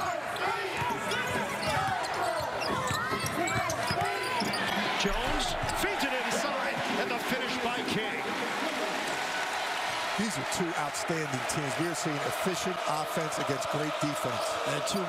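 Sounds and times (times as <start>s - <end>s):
arena crowd noise and voices: 0.0s - 15.0s.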